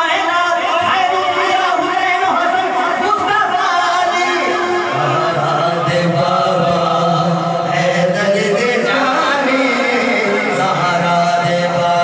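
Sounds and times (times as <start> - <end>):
man chanting over loudspeakers: 0.0 - 12.0.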